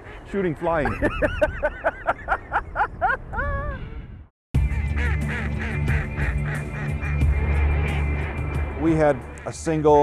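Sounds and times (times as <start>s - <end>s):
background music: 4.6s - 10.0s
ducks quacking: 4.8s - 8.6s.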